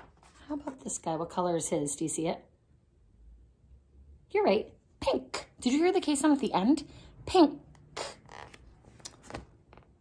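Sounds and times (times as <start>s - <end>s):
paper page rustling: 0.0s - 0.9s, 8.4s - 9.9s
light ticks of page turning: 8.5s - 9.9s.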